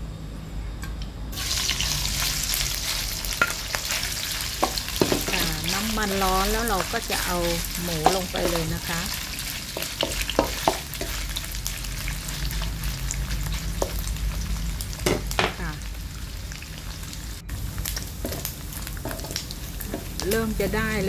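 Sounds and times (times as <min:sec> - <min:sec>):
meat sizzling in hot oil: 0:01.4 - 0:21.0
spatula scraping and knocking pan: 0:02.9 - 0:12.9, 0:18.2 - 0:20.3.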